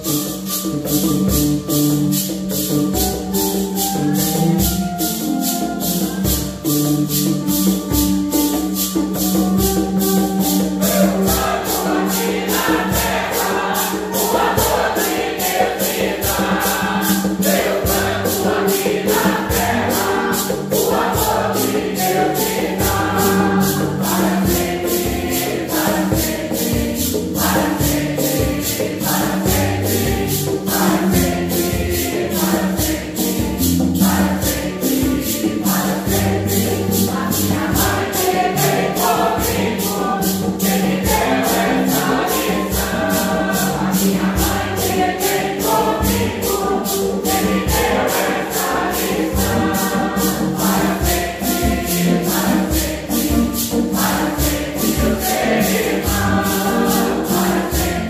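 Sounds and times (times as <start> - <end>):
guitar: 0.0 - 58.0
mandolin: 0.0 - 58.0
maracas shaken in a beat: 0.0 - 58.0
mixed choir singing a hymn: 2.2 - 7.8, 8.7 - 58.0.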